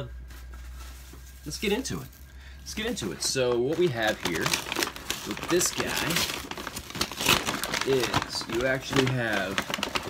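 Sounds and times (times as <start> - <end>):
paper bag crinkling: 0.3 - 10.0.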